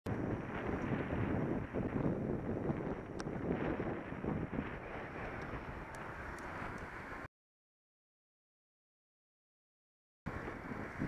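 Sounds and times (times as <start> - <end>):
wind buffeting microphone: 0.1 - 7.3, 10.3 - 11.0.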